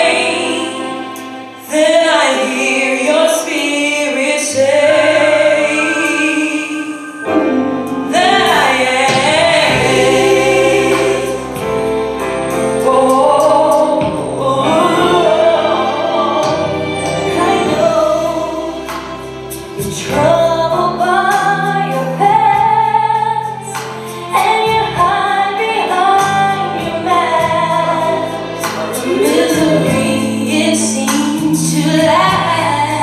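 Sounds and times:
backing instruments: 0.0s - 33.0s
gospel choir singing: 0.0s - 33.0s
bass line: 7.2s - 23.7s, 24.4s - 33.0s.

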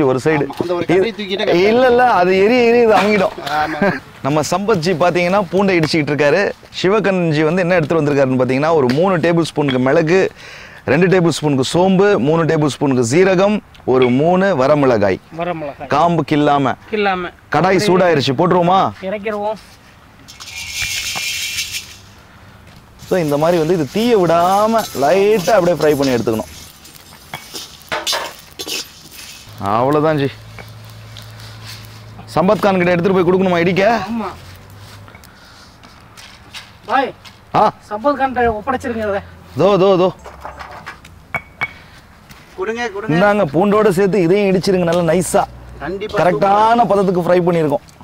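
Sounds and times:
dry spices scattering onto metal: 20.3s - 22.2s, 23.0s - 35.4s
person speaking: 23.0s - 26.6s, 29.5s - 31.4s, 32.0s - 34.5s.

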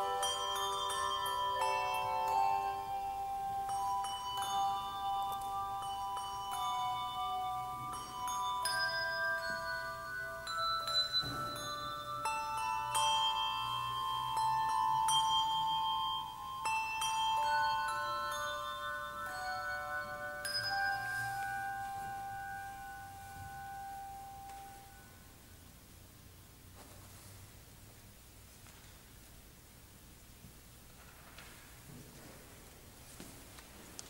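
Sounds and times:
handbell ensemble playing: 0.0s - 25.3s.

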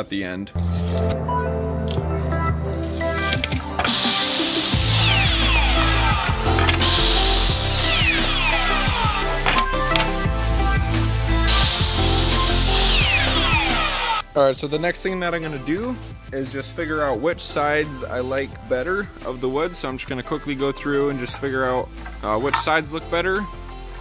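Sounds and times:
background music: 0.0s - 24.0s
miter saw cutting wood: 3.8s - 9.5s, 11.2s - 14.2s.

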